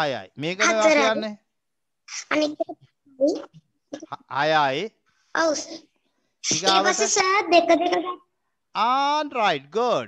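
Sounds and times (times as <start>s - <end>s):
man speaking into a microphone: 0.0s - 1.4s, 4.2s - 5.0s, 6.5s - 7.2s, 8.8s - 10.0s.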